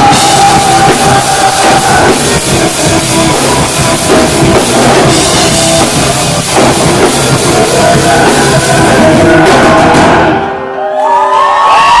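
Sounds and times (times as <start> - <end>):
crowd cheering and whooping: 0.0 - 2.6, 10.5 - 12.0.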